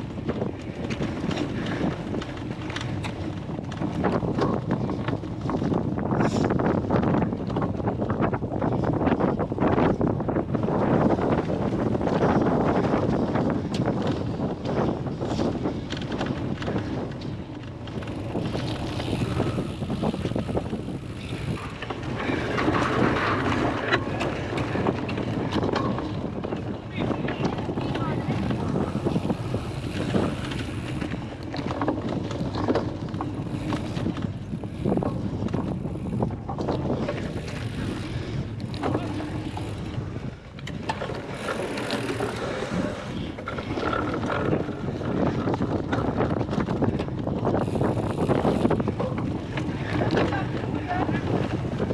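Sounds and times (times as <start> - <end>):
bicycles knocking and rattling: 0.0 - 51.9
wind noise on microphone: 0.0 - 51.9.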